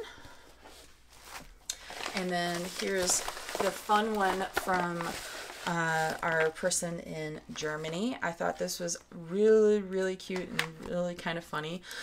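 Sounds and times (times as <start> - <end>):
plastic packet rustling: 1.1 - 6.8.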